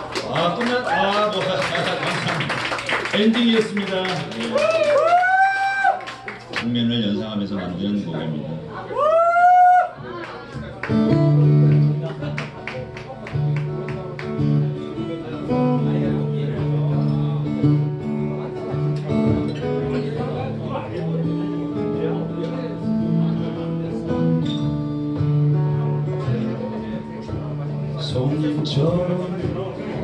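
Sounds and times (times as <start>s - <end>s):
acoustic guitar strummed and picked: 10.4s - 30.0s
live blues band playing: 10.4s - 30.0s.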